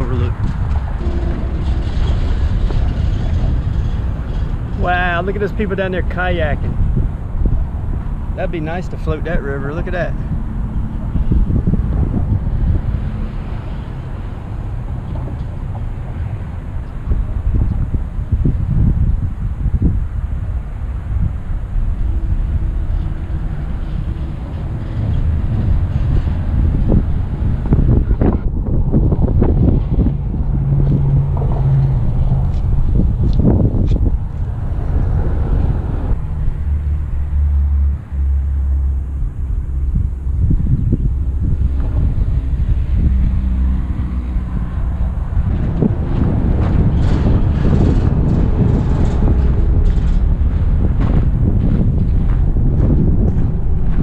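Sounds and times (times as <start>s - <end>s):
highway traffic rumble: 0.0s - 54.0s
passing vehicle drone: 0.0s - 54.0s
wind buffeting microphone: 0.0s - 54.0s.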